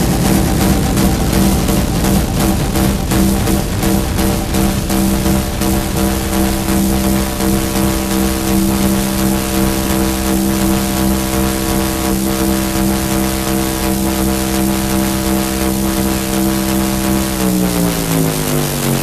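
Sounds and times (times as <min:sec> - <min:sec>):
engine-like synthesizer drone: 0:00.0 - 0:19.0.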